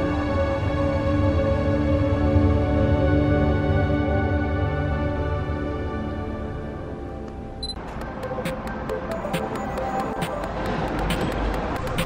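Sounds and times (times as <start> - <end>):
background music with steady beat: 0.0 - 12.0
brief high beep: 7.6 - 7.8.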